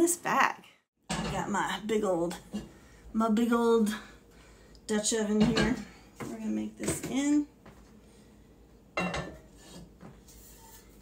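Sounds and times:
kitchen things rubbing and scraping: 9.0s - 11.0s.

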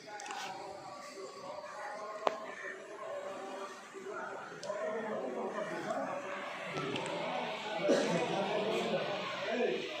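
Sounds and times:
murmur of conversation: 0.0s - 10.0s.

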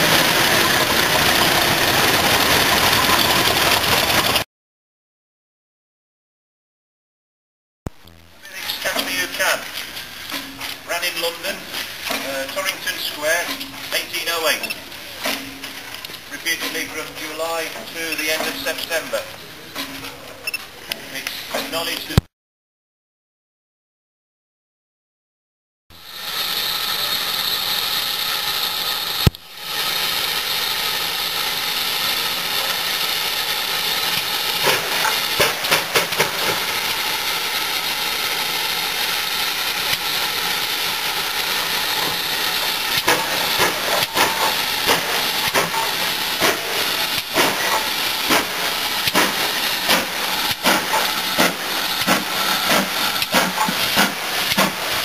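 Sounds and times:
steam locomotive moving slowly: 0.0s - 4.4s, 8.3s - 22.2s, 25.9s - 55.0s
person talking: 8.4s - 9.7s, 12.2s - 14.7s, 16.3s - 19.3s
metallic clanks and knocks: 10.3s - 10.8s, 14.5s - 18.7s, 43.0s - 46.7s, 47.4s - 54.8s
steam hiss: 26.0s - 55.0s.

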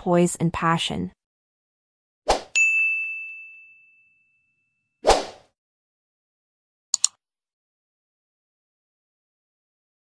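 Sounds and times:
bright bell-like ding: 2.6s - 4.7s
swish: 5.0s - 5.4s.

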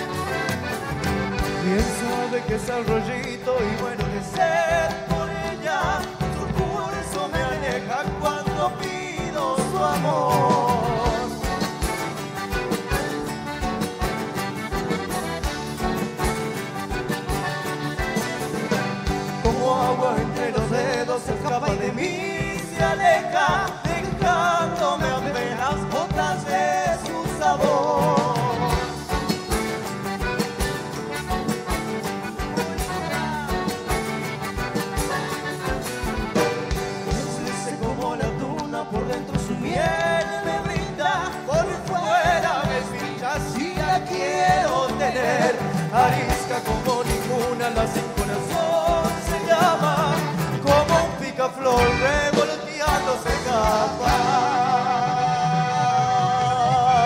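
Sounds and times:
folk band playing dance music: 0.0s - 57.0s.

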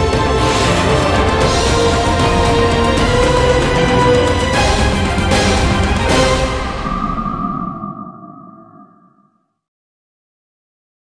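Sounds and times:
theme music: 0.0s - 9.0s
ringing sonar-like tone: 6.5s - 9.7s.

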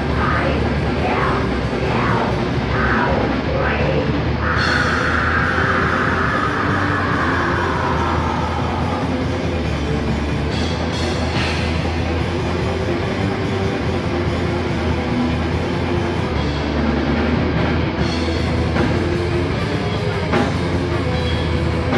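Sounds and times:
heavy metal band playing live: 0.0s - 21.9s.

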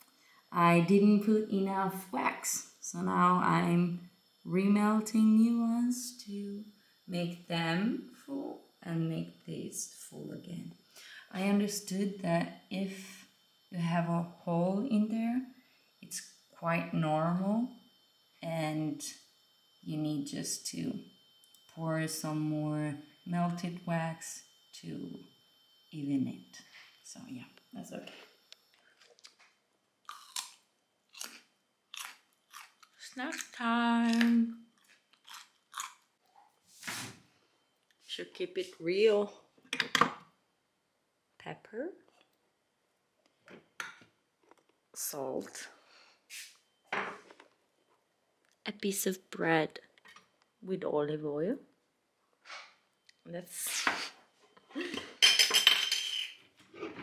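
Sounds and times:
cutlery and dishes clattering: 55.0s - 57.0s.

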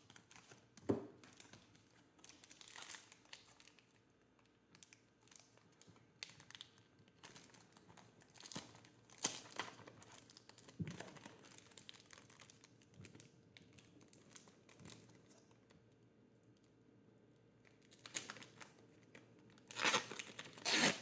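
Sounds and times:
plastic wrapper crinkling and tearing: 0.0s - 16.7s, 17.6s - 21.0s.

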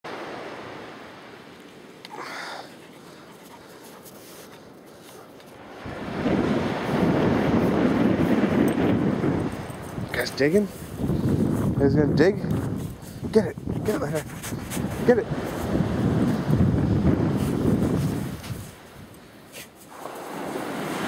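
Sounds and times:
wind gusts on microphone: 5.6s - 21.0s.

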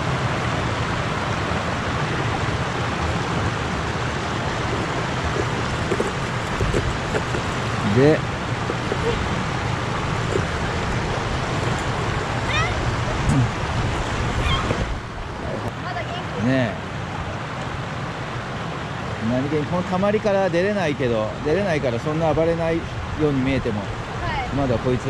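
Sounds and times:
stream water over weir: 0.0s - 25.0s.

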